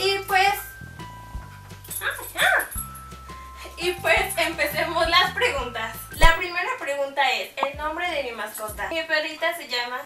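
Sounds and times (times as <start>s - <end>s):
background music with steady beat: 0.0s - 6.7s, 7.6s - 9.5s
dog whining: 2.1s - 2.8s.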